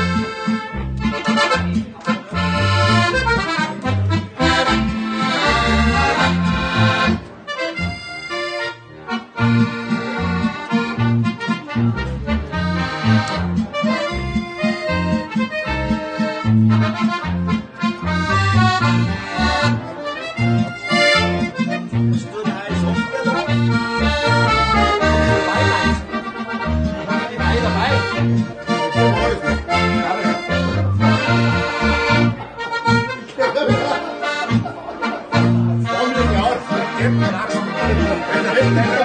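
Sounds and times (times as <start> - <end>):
button accordion: 0.0 - 39.0
piano accordion: 0.0 - 39.0.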